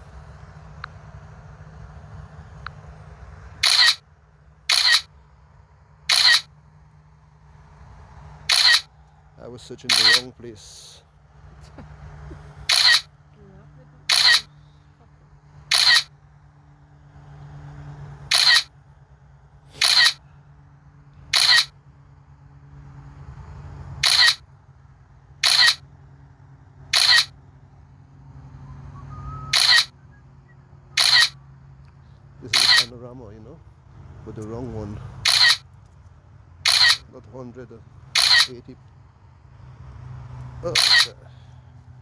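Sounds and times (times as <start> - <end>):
steady low hum: 0.0 - 42.0
camera shutter click: 3.6 - 4.0, 4.7 - 5.1, 6.1 - 6.5, 8.5 - 8.9, 9.9 - 10.3, 12.7 - 13.1, 14.1 - 14.5, 15.7 - 16.1, 18.3 - 18.7, 19.8 - 20.2, 21.3 - 21.7, 24.0 - 24.4, 25.4 - 25.8, 27.0 - 27.3, 29.5 - 29.9, 31.0 - 31.4, 32.5 - 32.9, 35.2 - 35.6, 36.6 - 37.0, 38.2 - 38.5, 40.7 - 41.1.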